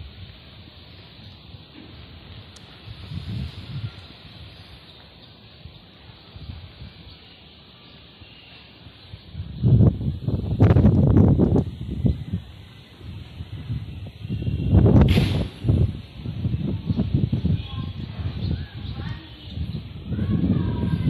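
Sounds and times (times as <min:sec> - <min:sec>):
wind buffeting microphone: 0:00.0 - 0:07.3, 0:08.9 - 0:21.0.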